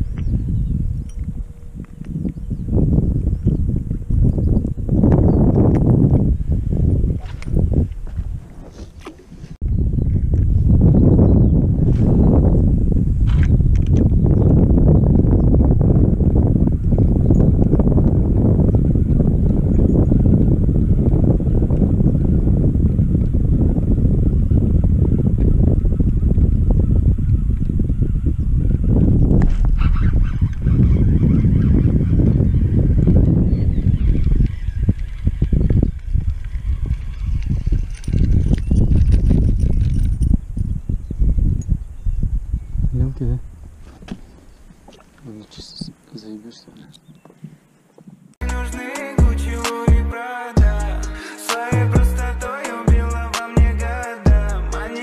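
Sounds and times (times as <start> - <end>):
wind buffeting microphone: 0.0 - 48.8.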